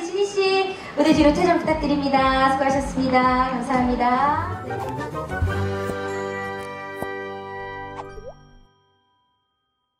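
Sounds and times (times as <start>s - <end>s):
cartoon plop effect: 8.0s - 8.5s.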